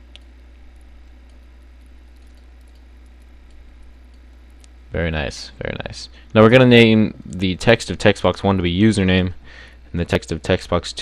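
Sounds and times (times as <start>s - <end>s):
electrical hum and hiss: 0.0s - 11.0s
faint mouse clicks: 0.1s - 4.8s.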